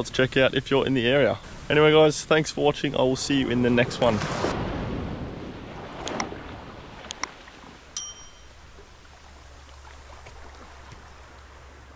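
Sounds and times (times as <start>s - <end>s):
small waves washing on sand: 3.4s - 8.0s
short bell ding: 8.0s - 8.7s.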